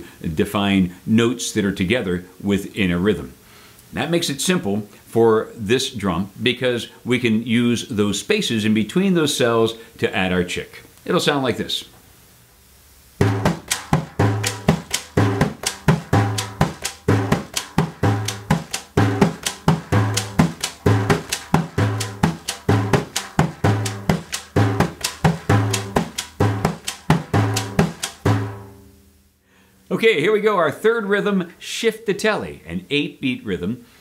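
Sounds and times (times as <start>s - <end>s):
drum slaps: 13.2s - 28.9s
deep bass drum strokes: 13.2s - 29.0s
drum edge strikes: 13.2s - 29.0s
frame drum rhythm: 13.2s - 29.0s.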